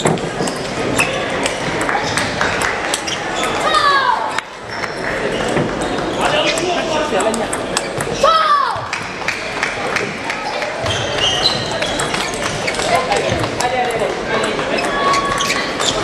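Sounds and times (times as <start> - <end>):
table tennis balls clicking: 4.3 - 8.2, 10.7 - 16.0.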